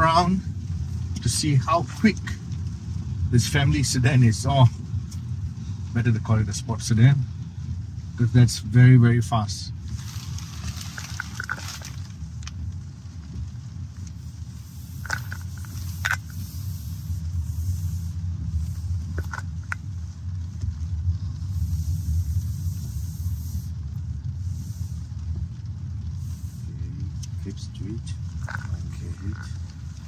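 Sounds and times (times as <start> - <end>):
low rumble of tyres and road: 0.0 - 30.0.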